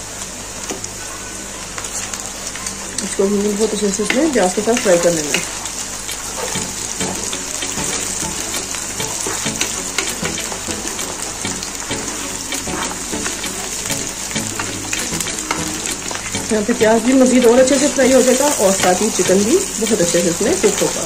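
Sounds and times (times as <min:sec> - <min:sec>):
small crackles and pops: 0:00.1 - 0:16.5
meat sizzling in hot oil: 0:01.4 - 0:21.0
wooden spatula stirring: 0:06.1 - 0:20.2.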